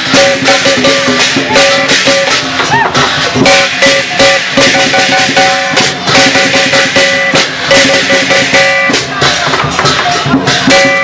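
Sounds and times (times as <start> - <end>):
gong: 0.0 - 9.1, 10.5 - 11.0
cymbals clashing: 0.0 - 11.0
drum beating: 0.0 - 11.0.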